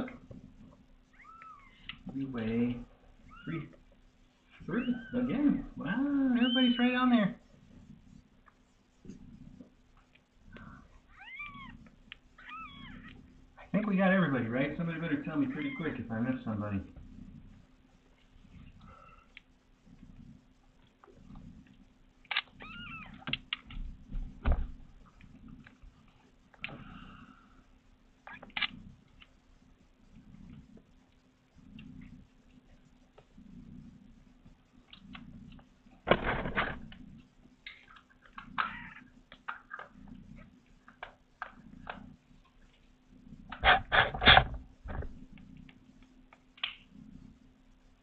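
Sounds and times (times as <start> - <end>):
kittens mewing: 4.6 - 7.1, 15.3 - 16.1, 38.4 - 40.0
kitten mewing: 38.6 - 39.0
sharp clicks: 45.6 - 46.9.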